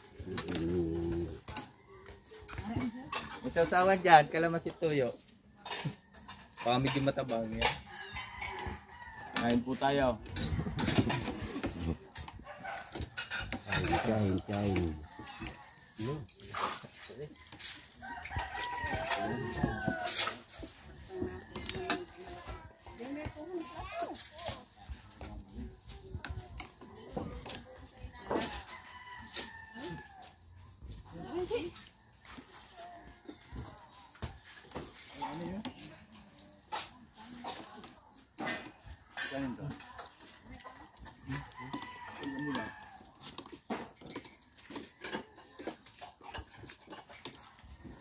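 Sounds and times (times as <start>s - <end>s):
voices chattering and calling out: 0.0s - 48.0s
rooster crowing: 7.7s - 9.8s, 16.8s - 21.9s, 28.4s - 30.4s, 41.0s - 43.6s.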